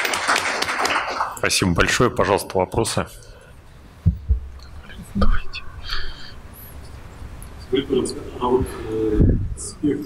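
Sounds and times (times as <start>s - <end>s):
dull low thumps: 4.0s - 4.6s.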